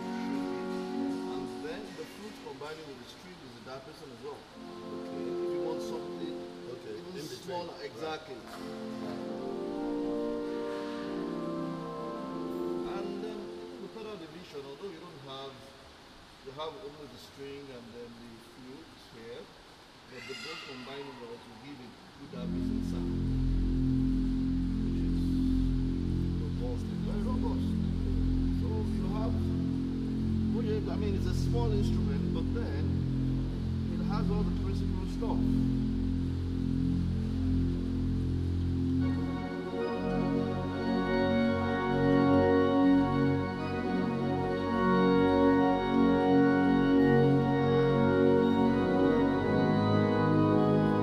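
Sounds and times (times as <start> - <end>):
organ playing low chords: 0.0 - 15.2, 22.1 - 51.0.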